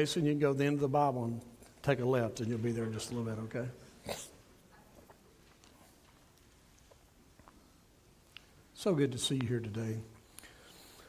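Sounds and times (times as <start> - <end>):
breath close to microphone: 10.2 - 11.0.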